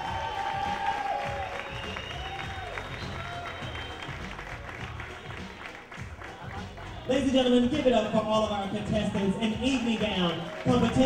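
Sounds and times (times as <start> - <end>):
audience applause: 0.0 - 7.7, 8.4 - 11.0.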